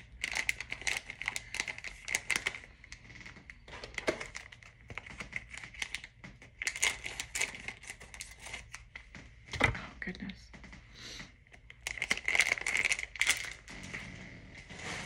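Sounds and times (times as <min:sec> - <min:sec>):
plastic packaging crinkling: 0:00.0 - 0:09.1, 0:11.5 - 0:14.0.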